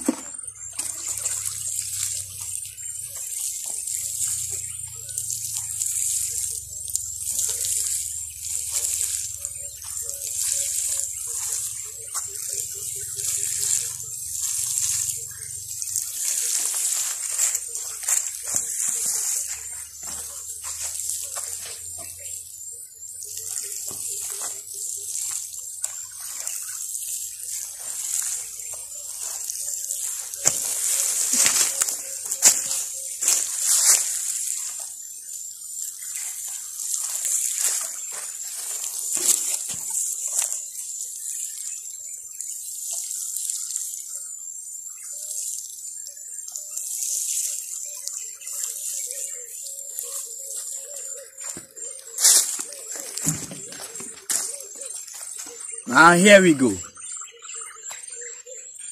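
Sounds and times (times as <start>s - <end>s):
watering can spraying water on soil: 0.0s - 58.9s.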